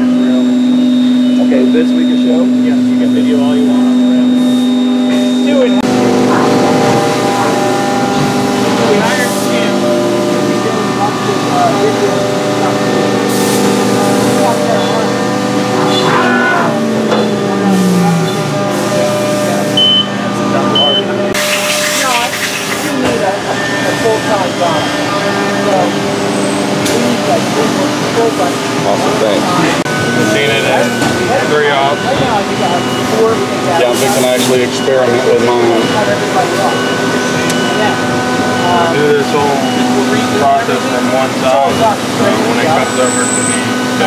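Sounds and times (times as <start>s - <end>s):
indistinct voices: 0.0s - 44.0s
milling machines whining: 0.0s - 44.0s.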